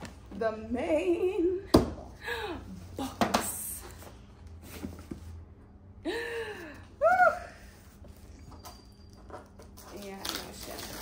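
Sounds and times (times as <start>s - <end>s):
woman speaking: 0.4s - 1.6s, 2.7s - 4.0s, 9.9s - 11.0s.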